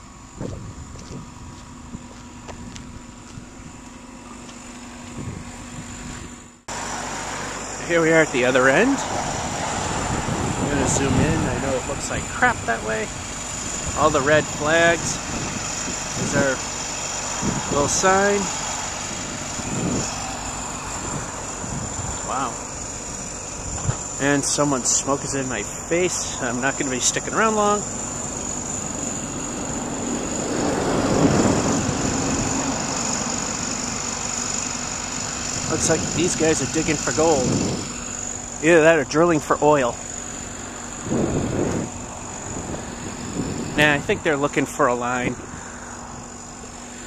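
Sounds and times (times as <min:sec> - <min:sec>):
engine running: 0:00.0 - 0:47.0.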